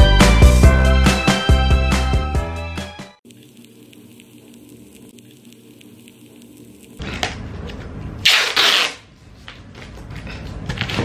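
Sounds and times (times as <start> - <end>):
packing tape ripping off roll: 8.2 - 9.1.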